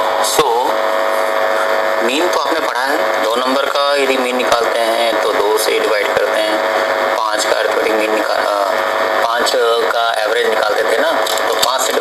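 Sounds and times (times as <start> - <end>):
electrical hum with hiss: 0.0 - 12.0.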